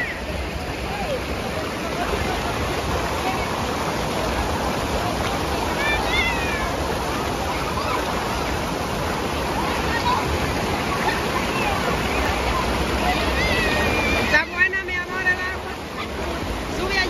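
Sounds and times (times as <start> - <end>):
river water pouring over rocks: 0.0 - 17.0.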